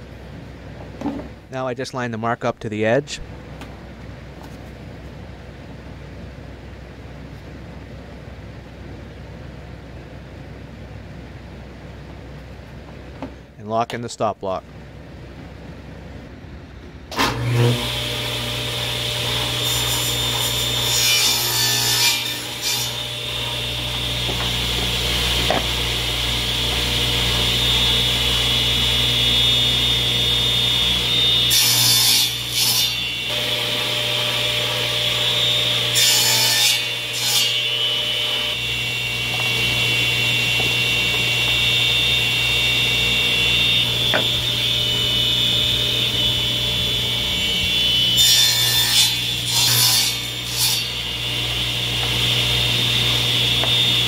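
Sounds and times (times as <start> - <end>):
saw blade cutting wood: 17.1 - 54.0
table saw running: 17.2 - 54.0.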